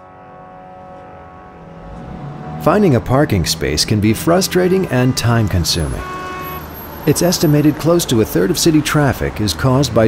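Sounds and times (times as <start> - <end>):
held synthesized chord: 0.0 - 6.5
car traffic noise: 0.0 - 10.0.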